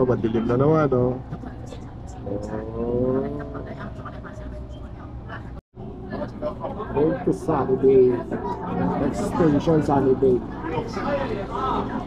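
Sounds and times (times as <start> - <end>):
passengers' voices: 0.0 - 12.0.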